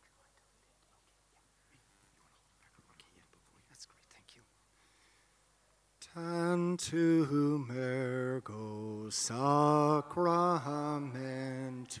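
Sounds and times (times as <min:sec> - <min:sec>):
faint whispering: 0:00.0 - 0:04.8.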